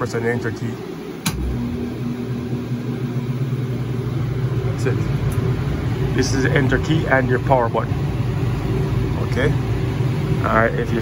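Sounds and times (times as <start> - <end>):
blower fan humming: 0.0 - 11.0.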